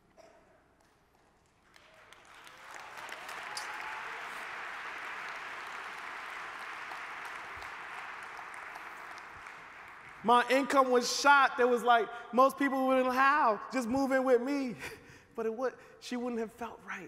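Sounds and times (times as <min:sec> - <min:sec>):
audience applause: 0:01.6 - 0:10.8.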